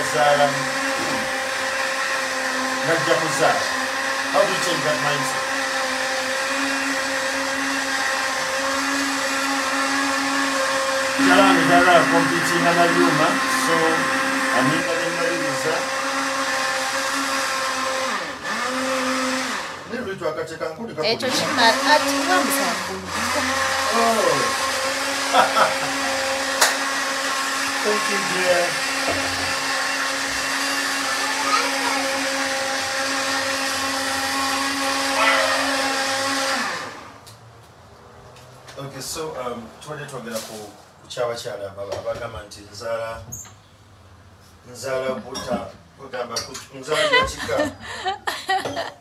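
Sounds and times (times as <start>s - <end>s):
electric motor whirring: 0.0s - 19.9s, 21.1s - 37.2s.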